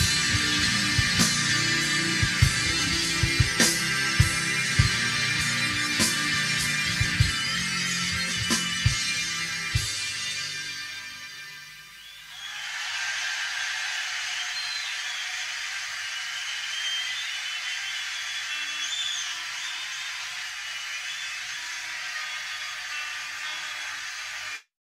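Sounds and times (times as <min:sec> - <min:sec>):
whistles: 0:11.9 - 0:24.2
audience applauding: 0:12.4 - 0:24.6.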